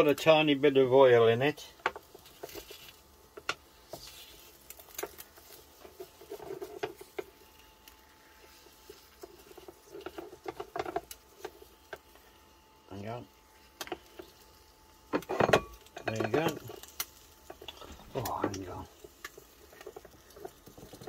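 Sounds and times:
wooden spatula scraping a plate: 1.9 - 12.3.

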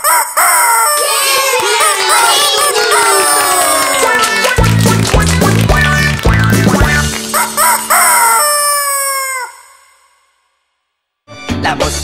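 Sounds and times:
band ending a song: 3.8 - 7.4
rooster crowing: 7.3 - 9.8.

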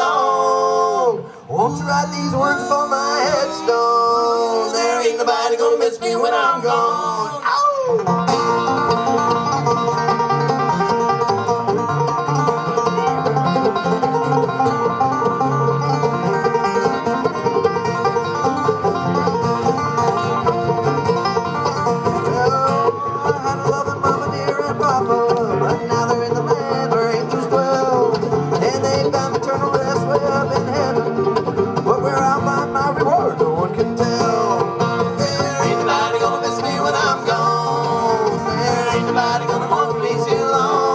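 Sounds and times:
banjo: 0.0 - 40.9
bluegrass string band playing: 0.0 - 40.9.

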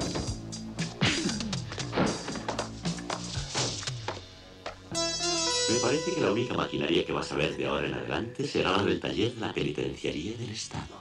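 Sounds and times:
action music: 0.0 - 9.0.

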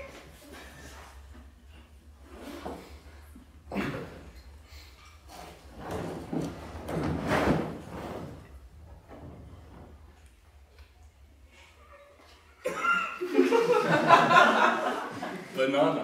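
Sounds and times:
burst of laughter: 12.6 - 15.4.

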